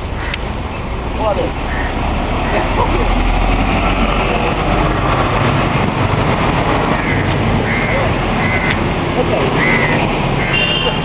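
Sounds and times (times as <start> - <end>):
bus and cars passing: 0.0 - 11.0.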